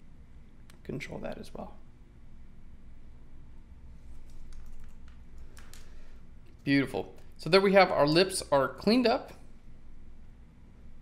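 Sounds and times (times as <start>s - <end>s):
faint low hum: 0.0s - 11.0s
computer keys clicking: 4.2s - 6.0s.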